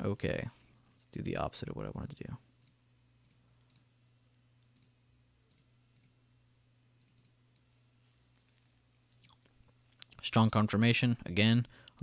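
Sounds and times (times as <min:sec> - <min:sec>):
low steady hum: 0:00.0 - 0:12.0
computer mouse clicks: 0:02.6 - 0:03.9, 0:04.7 - 0:04.9, 0:05.5 - 0:06.2, 0:07.0 - 0:07.7.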